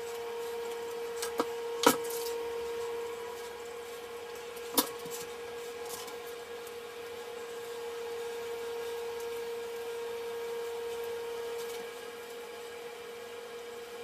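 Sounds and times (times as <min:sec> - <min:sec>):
steady hum: 0:00.0 - 0:14.0.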